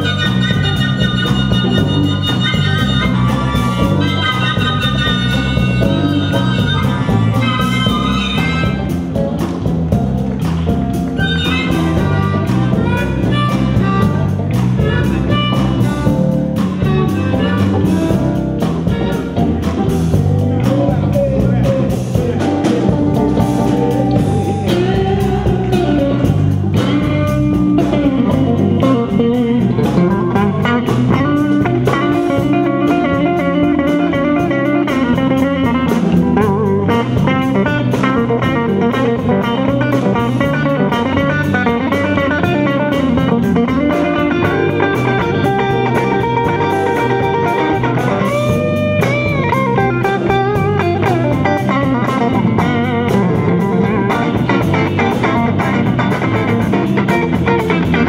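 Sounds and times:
electric guitar lead: 0.0s - 58.0s
repeating bass line: 0.0s - 58.0s.

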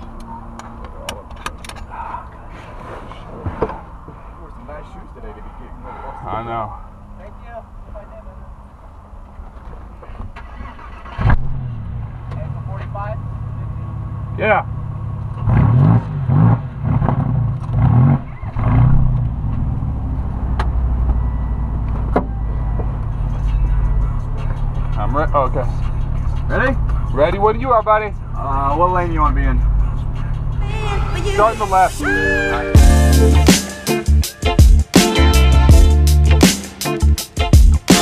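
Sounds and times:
car engine starting and revving: 5.7s - 38.0s.

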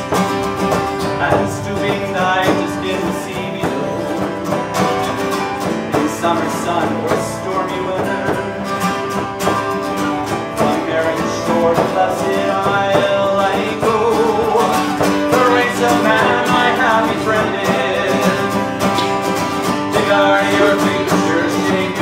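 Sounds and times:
folk band playing: 0.0s - 22.0s
strummed acoustic guitar: 0.0s - 22.0s.

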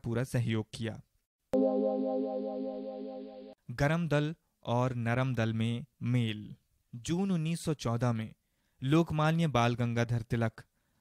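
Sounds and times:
synthesizer chord sting: 1.6s - 3.6s.

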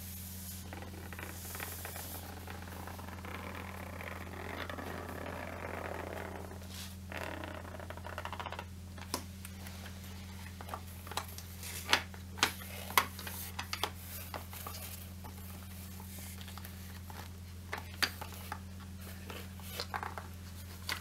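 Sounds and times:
microphone hum and hiss: 0.0s - 21.0s
zipper being drawn open: 0.7s - 7.4s.

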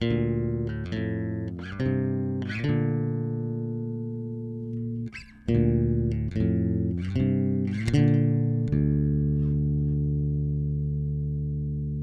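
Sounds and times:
plucked electric bass notes: 0.0s - 12.0s.

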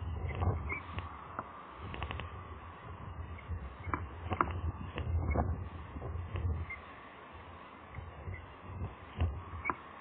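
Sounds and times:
wind rumble on microphone: 0.0s - 6.8s, 7.9s - 9.7s.

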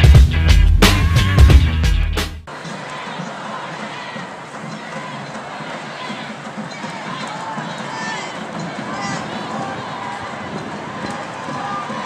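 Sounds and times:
crowd babble: 2.5s - 12.0s.

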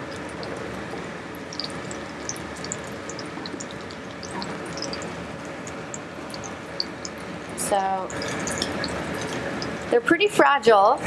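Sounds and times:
food frying in hot oil: 0.0s - 11.0s.

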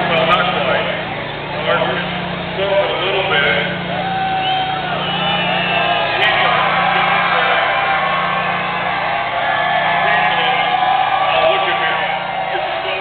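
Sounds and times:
steady low hum: 0.0s - 13.0s
crowd cheering and whooping: 3.7s - 13.0s.

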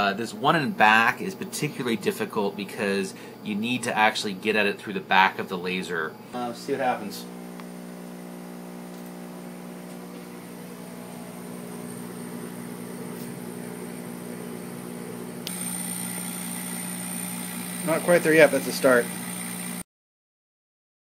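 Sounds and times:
high thin whine: 0.0s - 19.8s
laser cutter electrical hum: 0.0s - 19.8s.

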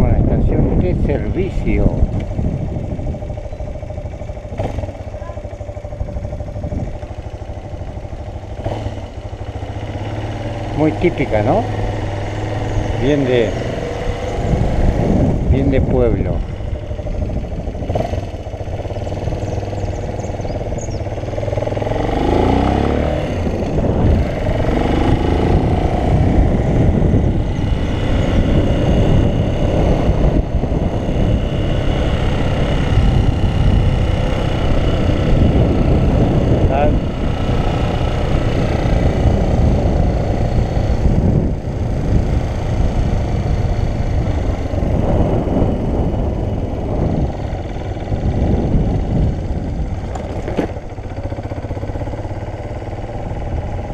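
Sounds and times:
motorcycle engine accelerating: 0.0s - 53.9s
wind rumbling on microphone: 0.0s - 53.9s.

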